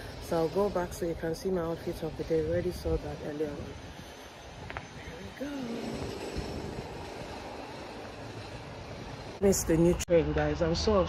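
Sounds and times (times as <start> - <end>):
train rumbling past: 0.0 - 11.0.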